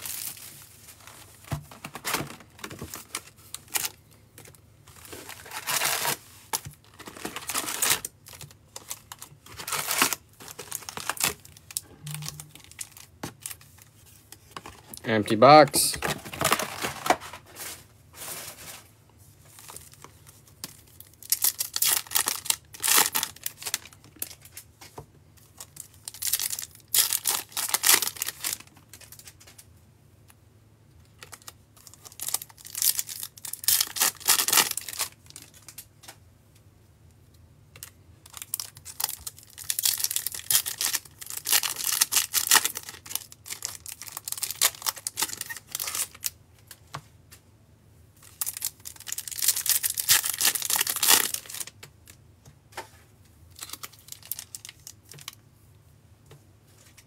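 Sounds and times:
foil wrappers tearing and crinkling: 0.0 - 4.0, 4.9 - 15.0, 15.9 - 18.9, 19.5 - 24.7, 25.4 - 29.6, 31.2 - 35.9, 37.8 - 46.4, 48.2 - 51.8, 53.6 - 55.4.

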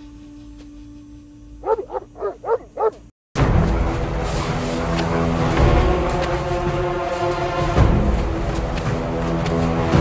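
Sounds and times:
dog barking: 1.6 - 3.1
dramatic background music: 3.4 - 10.0.

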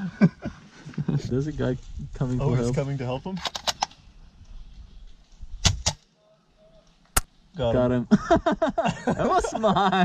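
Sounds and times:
airsoft rifle shots: 5.6 - 6.0.

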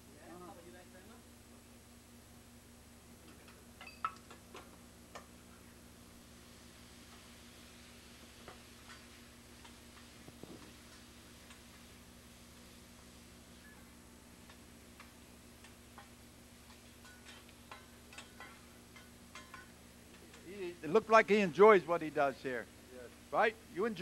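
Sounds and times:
steady low hum: 0.0 - 24.0
metal utensils tapping griddle: 8.4 - 11.8, 14.4 - 20.5.

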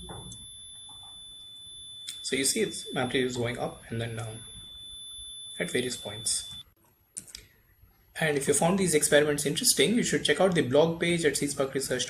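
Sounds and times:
buzzer high-pitched tone: 0.0 - 6.7.

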